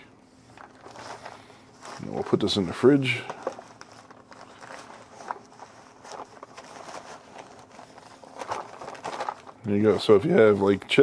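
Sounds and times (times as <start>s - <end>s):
fabric bag rustling: 0.3s - 10.8s.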